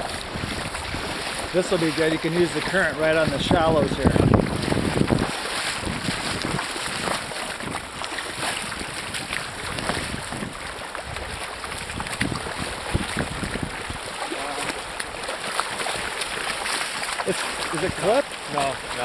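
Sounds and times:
river water rushing: 0:00.0 - 0:19.0.

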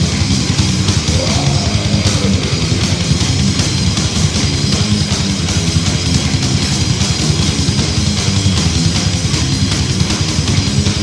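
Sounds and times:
extreme metal music: 0:00.0 - 0:11.0.

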